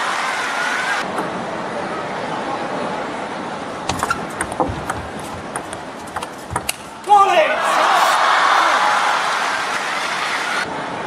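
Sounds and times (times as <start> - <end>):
hall background noise: 0.0 - 11.0
table tennis ball ticking: 3.9 - 6.9.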